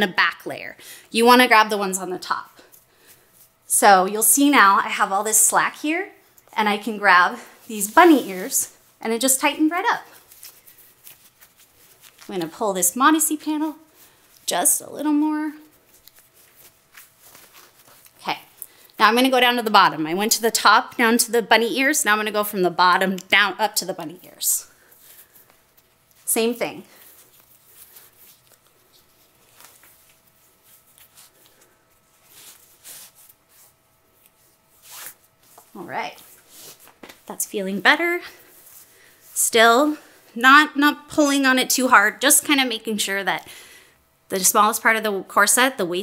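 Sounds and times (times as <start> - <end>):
fabric rustling and scratching: 7.1 - 18.6, 24.8 - 37.3
laces swishing through eyelets: 24.9 - 37.3.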